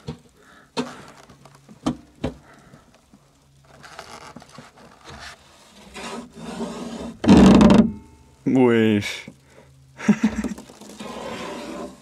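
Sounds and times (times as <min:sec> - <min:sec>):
frost scraped off car window: 0:03.8 - 0:07.2, 0:10.7 - 0:12.0.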